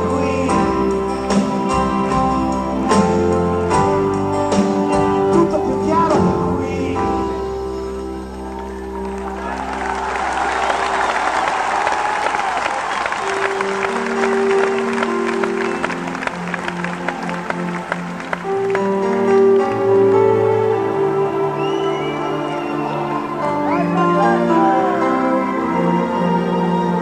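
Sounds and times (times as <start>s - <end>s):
live band playing chords: 0.0s - 27.0s
audience applauding: 8.4s - 20.1s, 20.8s - 27.0s.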